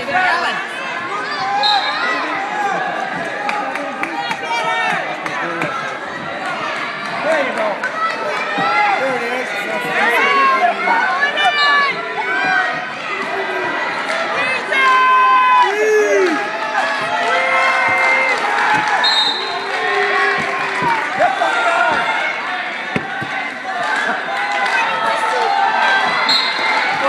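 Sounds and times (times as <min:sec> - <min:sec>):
crowd shouting and yelling: 0:00.0 - 0:27.0.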